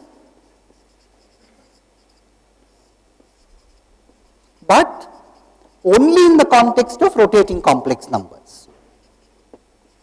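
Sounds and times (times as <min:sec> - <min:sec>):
marker scratching on paper: 0:00.0 - 0:07.2, 0:09.0 - 0:10.0.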